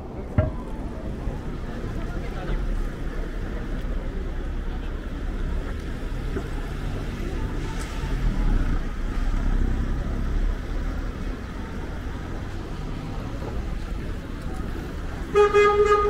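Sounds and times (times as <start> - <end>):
city street traffic: 0.0 - 16.0.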